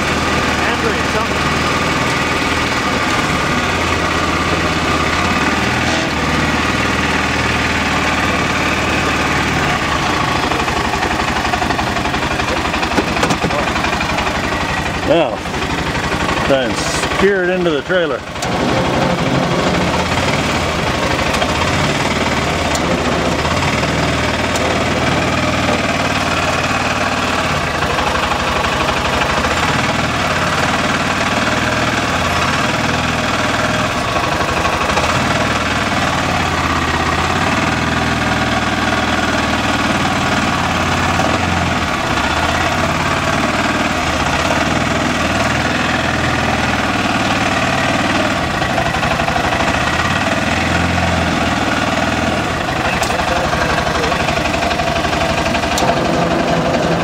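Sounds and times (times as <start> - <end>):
utility vehicle engine idling: 0.0 - 57.0.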